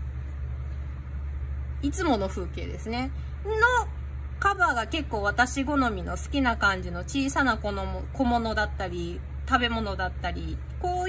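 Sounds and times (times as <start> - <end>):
low background hum: 0.0 - 11.0
woman speaking: 1.8 - 11.0.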